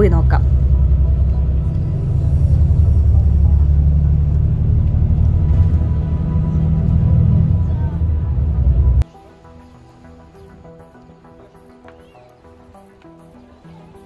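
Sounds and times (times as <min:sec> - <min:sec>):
bus engine rumble and road noise: 0:00.0 - 0:09.1
quiet background music: 0:00.0 - 0:14.0.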